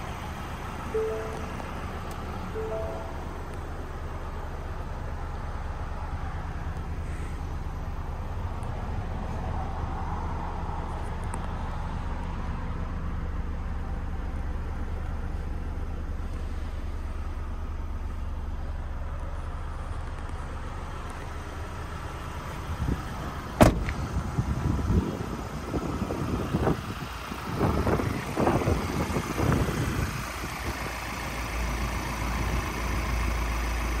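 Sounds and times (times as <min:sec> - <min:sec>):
van door slamming: 0:23.6 - 0:24.0.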